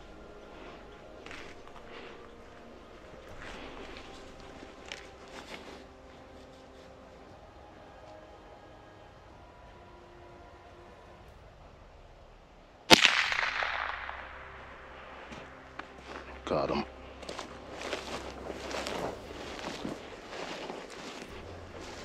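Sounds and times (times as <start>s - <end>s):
faint outdoor background: 0.0s - 22.0s
rifle shot echoing: 12.9s - 15.5s.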